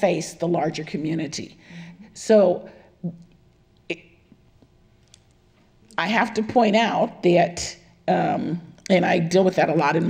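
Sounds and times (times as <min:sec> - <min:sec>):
woman speaking: 0:00.0 - 0:03.3, 0:05.9 - 0:10.0
small quiet clicks: 0:04.6 - 0:05.4.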